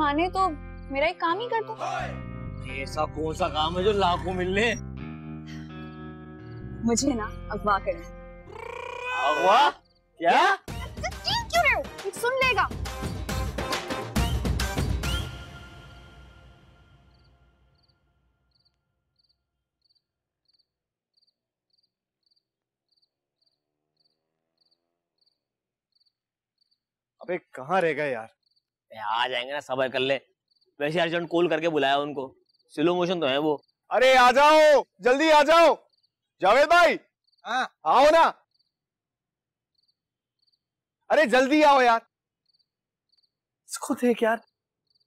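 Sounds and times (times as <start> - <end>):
faint cricket chirping: 6.4 - 7.4, 8.5 - 10.4, 16.7 - 38.8, 39.7 - 45.0.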